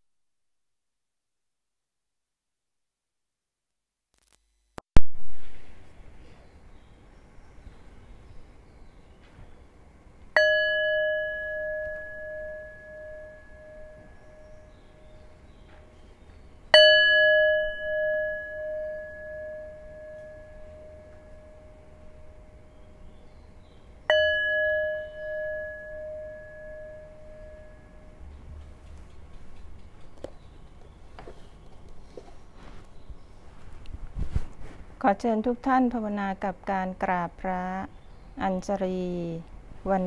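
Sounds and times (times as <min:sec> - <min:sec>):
metal bell ringing: 0:10.4 - 0:15.2, 0:16.7 - 0:22.5, 0:24.1 - 0:28.2.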